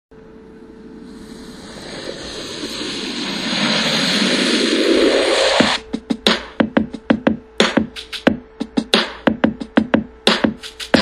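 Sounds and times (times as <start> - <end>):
rushing whoosh: 0.5 - 5.8
drum machine beat: 5.3 - 11.0.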